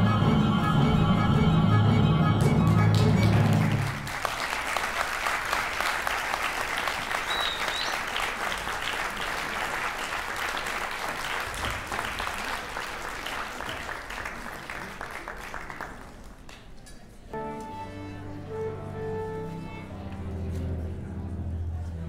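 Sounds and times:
audience applause: 2.9s - 16.7s
high whistle: 7.2s - 8.0s.

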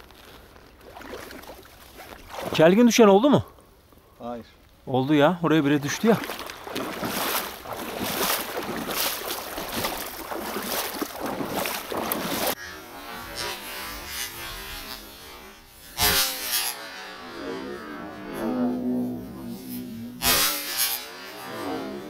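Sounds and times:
water sloshing in marsh: 0.3s - 2.9s, 5.6s - 12.6s.

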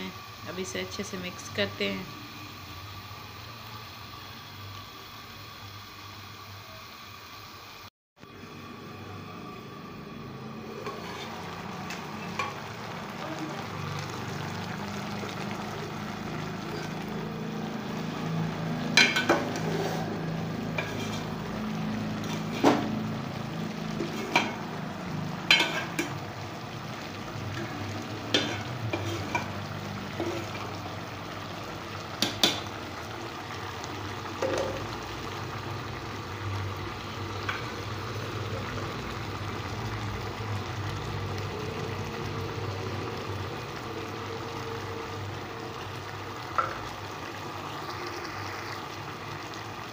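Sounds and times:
curry sizzling in a pot: 0.0s - 49.9s.

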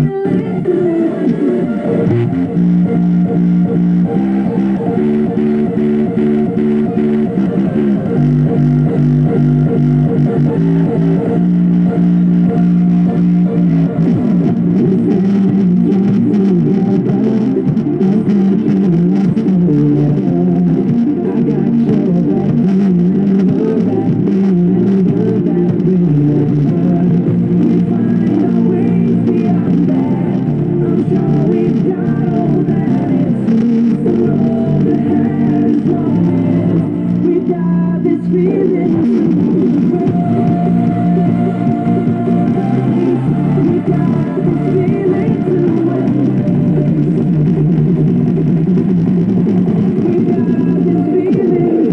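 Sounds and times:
music through portable speaker: 0.0s - 51.9s.

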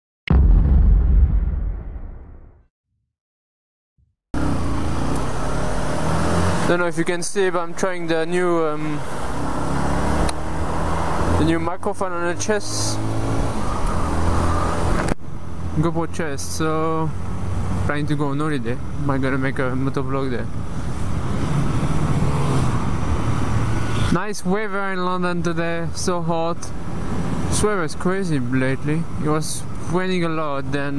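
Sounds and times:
wind and road noise: 4.4s - 30.9s.

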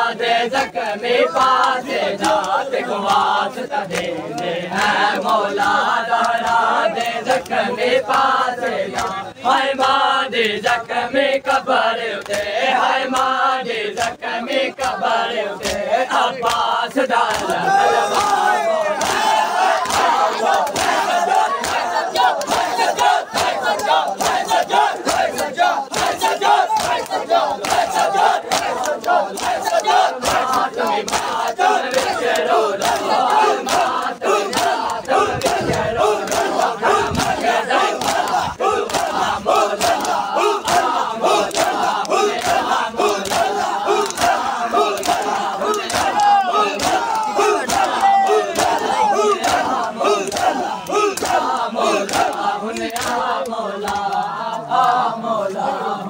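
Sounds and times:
crowd of men calling out: 0.0s - 3.0s, 16.0s - 52.6s
hands slapping chests: 1.4s - 8.3s, 12.2s - 13.3s, 14.0s - 15.0s, 15.6s - 15.8s, 16.4s - 55.0s.

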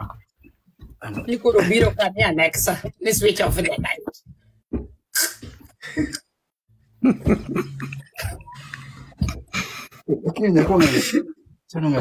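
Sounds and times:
vocal bursts: 5.1s - 6.2s, 7.0s - 10.0s.

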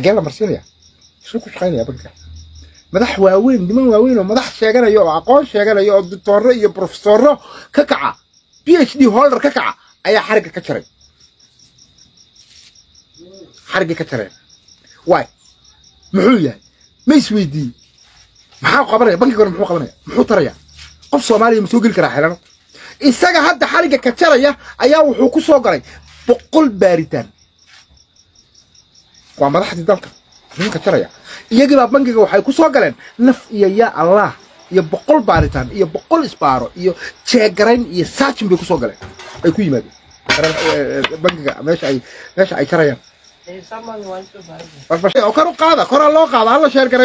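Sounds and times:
cricket chirping: 0.0s - 47.0s
man speaking loudly: 2.9s - 10.8s, 16.1s - 17.8s, 18.6s - 22.4s, 23.0s - 27.3s, 29.4s - 43.0s, 44.9s - 47.0s
faint high-pitched chirping: 7.8s - 23.2s.

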